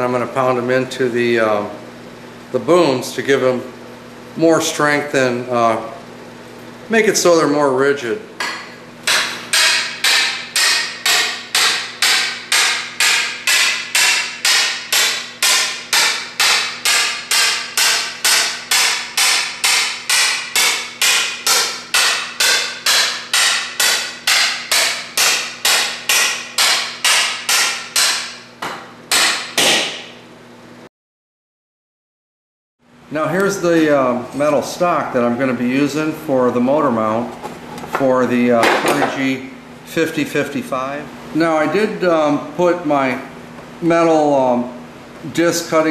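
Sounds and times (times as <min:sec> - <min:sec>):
hammer pounding wood into metal tube: 0:08.4 - 0:30.1.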